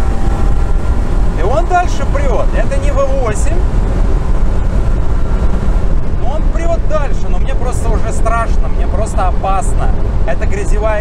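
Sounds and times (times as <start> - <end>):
engine and exhaust drone: 0.0 - 11.0
wind and road noise: 0.0 - 11.0.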